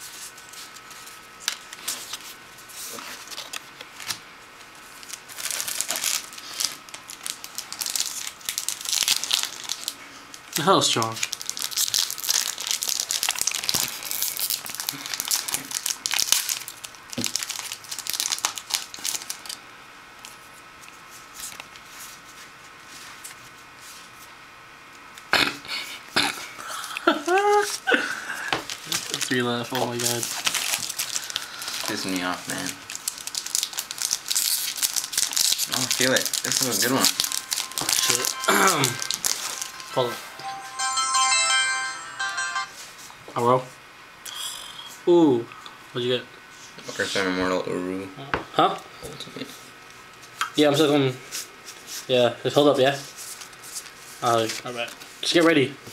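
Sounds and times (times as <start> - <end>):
foil wrapper crinkling: 4.9 - 19.6, 28.6 - 39.9
foil wrapper tearing: 5.0 - 10.0, 11.0 - 19.6, 28.7 - 39.6
mobile phone ringtone: 36.5 - 42.9.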